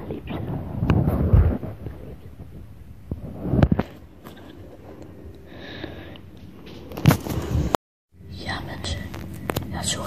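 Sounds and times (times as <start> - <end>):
hushed whispering voices: 8.3 - 10.0.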